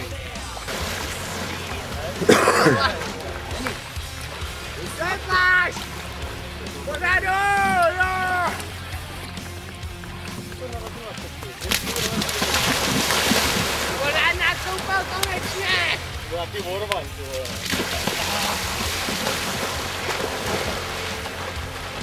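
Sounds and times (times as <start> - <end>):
bathers shouting: 0.0 - 9.3, 12.2 - 16.3, 17.7 - 22.0
people splashing in water: 0.0 - 22.0.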